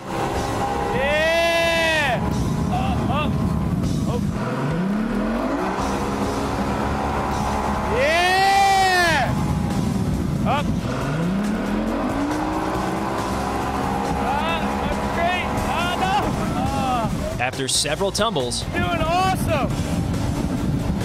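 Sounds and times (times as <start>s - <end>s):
outboard motor revving: 0.0s - 21.0s
person yelling: 0.9s - 3.4s, 7.9s - 9.4s, 14.2s - 17.4s.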